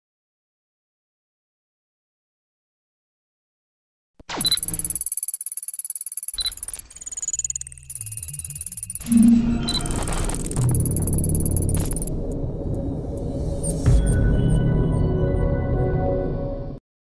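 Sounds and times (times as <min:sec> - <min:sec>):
stuttering digital chirps and beeps: 0:04.2 - 0:12.3
high steady tones: 0:04.3 - 0:12.4
dense low drone: 0:07.8 - 0:16.8.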